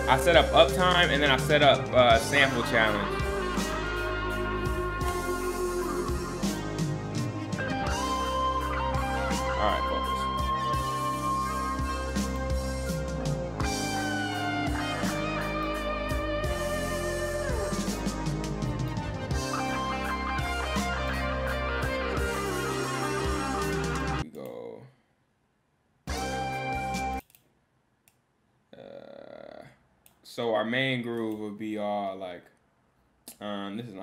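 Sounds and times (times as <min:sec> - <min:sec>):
sampled guitar music: 0:00.0 - 0:24.2, 0:26.1 - 0:27.2
steady low bass: 0:00.0 - 0:24.2.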